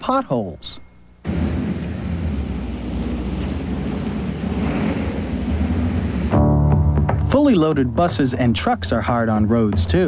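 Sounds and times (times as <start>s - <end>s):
low engine rumble: 1.2s - 10.0s
tyres hissing through slush: 1.6s - 6.4s.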